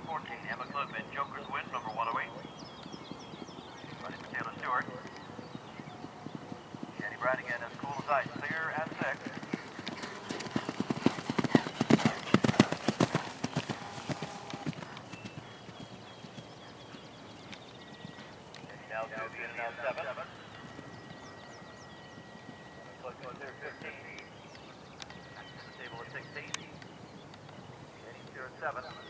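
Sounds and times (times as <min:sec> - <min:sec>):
horse hoofbeats galloping on turf: 0:00.2 - 0:27.7.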